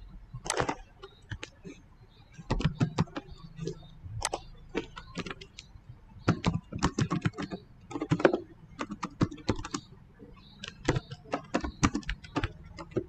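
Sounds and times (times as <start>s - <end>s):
computer keyboard typing: 0.4s - 13.0s.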